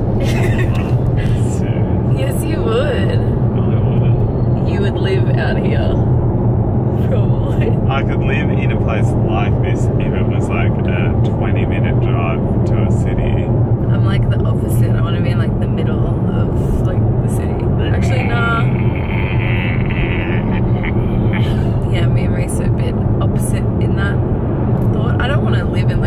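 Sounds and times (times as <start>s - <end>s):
car road and engine noise: 0.0s - 26.0s
people talking: 0.2s - 6.0s, 7.0s - 24.2s, 24.8s - 26.0s.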